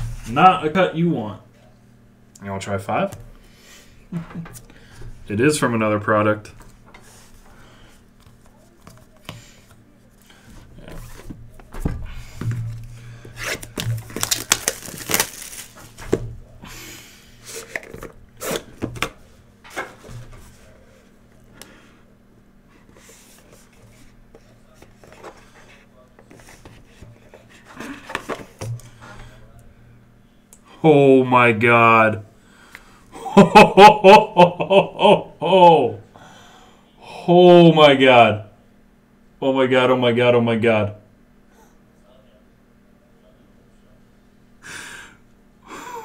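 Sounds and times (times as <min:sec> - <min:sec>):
faint low hum: 0:00.0 - 0:46.0
cardboard packaging rustling: 0:12.6 - 0:16.2.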